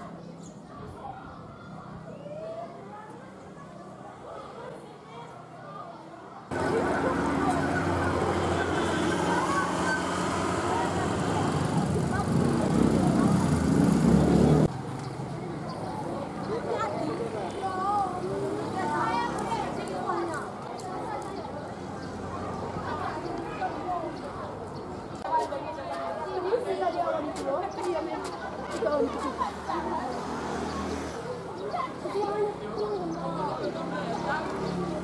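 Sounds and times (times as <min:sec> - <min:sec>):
people talking: 0:00.0 - 0:14.7, 0:15.3 - 0:35.0
faint voices: 0:00.0 - 0:35.0.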